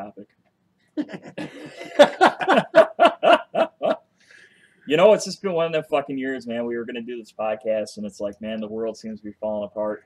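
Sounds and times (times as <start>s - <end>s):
man laughing: 1.0s - 4.0s.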